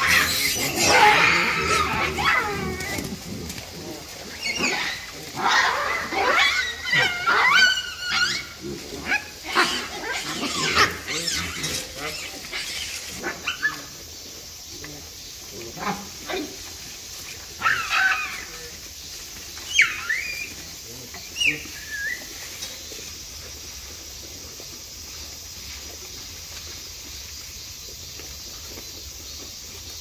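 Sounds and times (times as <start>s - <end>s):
baboons calling and screaming: 0.0s - 22.7s.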